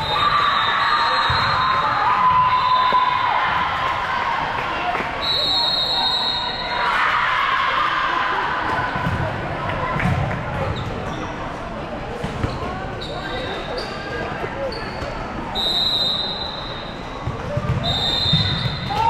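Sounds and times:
background chatter: 0:03.6 - 0:18.8.

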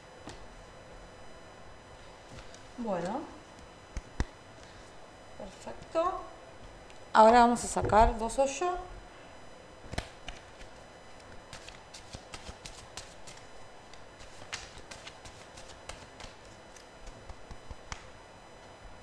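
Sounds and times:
cards being shuffled: 0:09.9 - 0:10.8, 0:11.5 - 0:18.1.

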